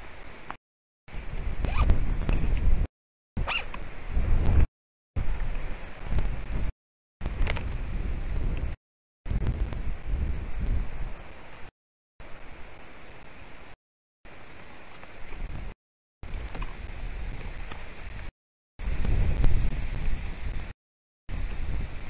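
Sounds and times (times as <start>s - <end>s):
wind rumbling on microphone: 1.1s - 13.8s, 14.4s - 20.7s, 21.3s - 22.0s
microphone handling noise: 1.2s - 11.2s, 16.3s - 20.7s.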